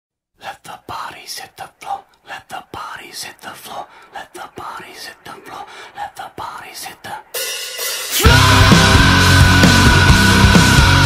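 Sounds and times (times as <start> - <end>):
person whispering: 0.4 - 7.4.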